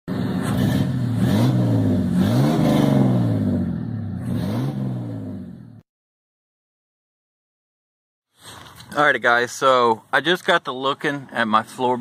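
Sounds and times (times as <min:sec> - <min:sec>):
vehicle engine revving: 0:00.1 - 0:05.8.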